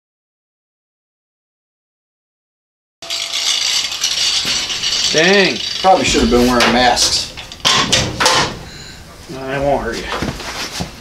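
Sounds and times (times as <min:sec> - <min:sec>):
angle grinder grinding metal: 0:03.0 - 0:07.8.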